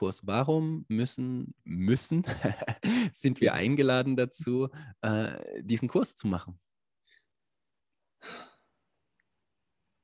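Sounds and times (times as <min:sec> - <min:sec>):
person sighing: 0:08.2 - 0:08.8.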